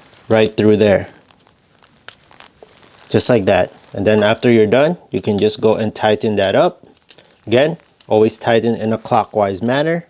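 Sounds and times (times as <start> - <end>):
wire handling noise: 0.0 - 9.4.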